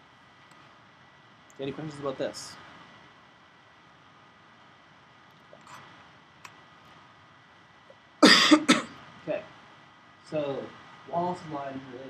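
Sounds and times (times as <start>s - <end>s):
person coughing harshly: 8.2s - 8.9s.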